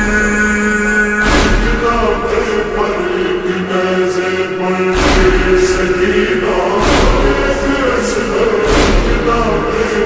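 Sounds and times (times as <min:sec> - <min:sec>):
voices chanting a lament: 0:00.0 - 0:10.0
deep low thump: 0:01.2 - 0:02.3, 0:05.0 - 0:09.9.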